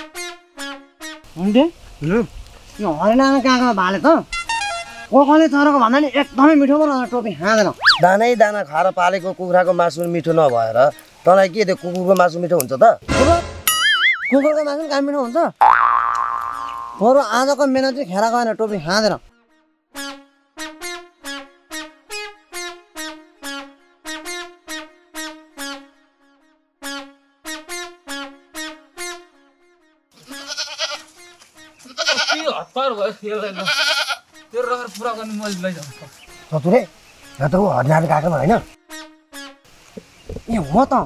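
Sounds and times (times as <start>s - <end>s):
high wobbling boing tone: 7.8s - 8.1s, 13.1s - 14.5s, 15.6s - 17.1s
tone springing up in pitch: 7.8s - 8.1s, 13.6s - 14.6s, 15.6s - 17.2s
goat bleating: 30.2s - 31.1s, 31.8s - 32.7s, 33.4s - 34.3s.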